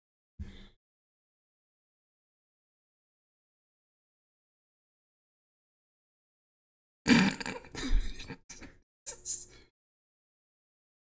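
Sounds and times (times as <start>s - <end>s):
man clearing his throat: 7.1s - 8.6s.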